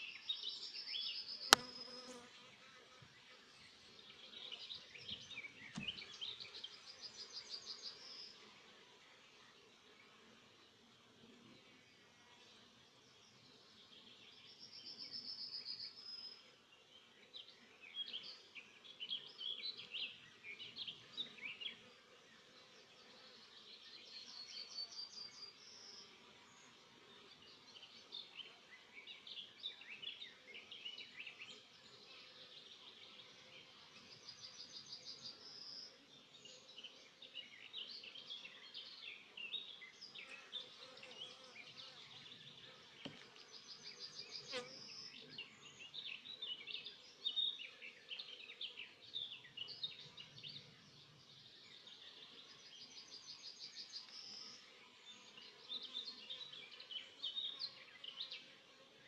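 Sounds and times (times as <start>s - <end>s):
light knock: 5.7s - 6.0s.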